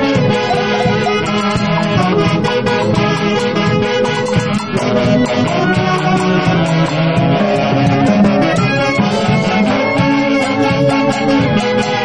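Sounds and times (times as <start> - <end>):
saxophones: 0.0 - 12.0
violin: 0.0 - 12.0.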